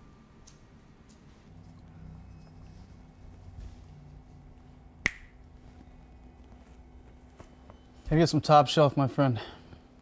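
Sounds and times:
finger snap: 5.0 - 5.4.

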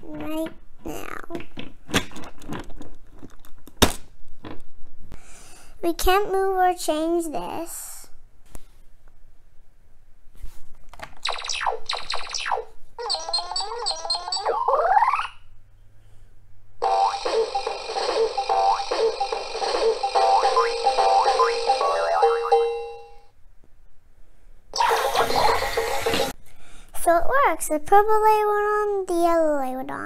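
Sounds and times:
toy warbling sweep: 11.2 - 15.4, 16.8 - 22.8, 24.8 - 26.3
toy electronic jingle: 11.3 - 15.3, 16.8 - 23.3, 24.8 - 26.3
toy falling electronic tones: 11.3 - 15.4, 16.8 - 23.2
toy hissing burst: 24.8 - 26.4.

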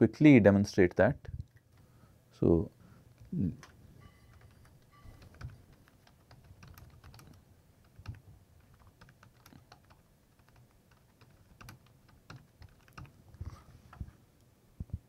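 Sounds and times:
keyboard typing: 3.1 - 13.2.

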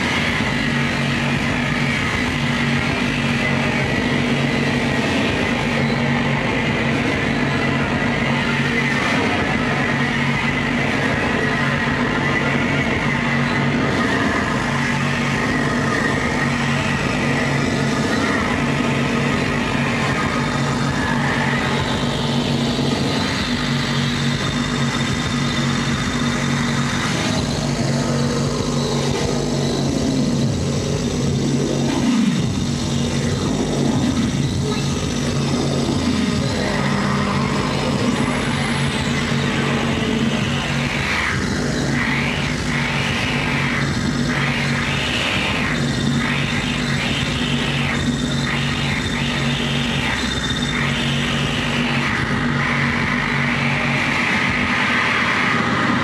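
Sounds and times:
harsh noise wall: 0.0 - 56.0
low drone: 0.0 - 56.0
pulsing electronic noise: 0.0 - 56.0.

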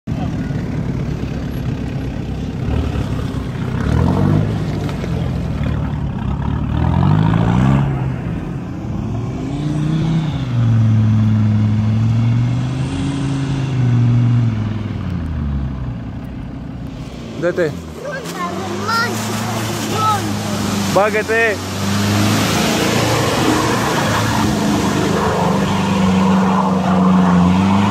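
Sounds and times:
suv engine revving: 0.3 - 27.9.

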